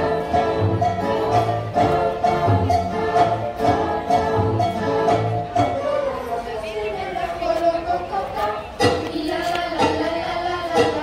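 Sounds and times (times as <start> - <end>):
soft band music: 0.0 - 11.0
voices: 1.1 - 11.0.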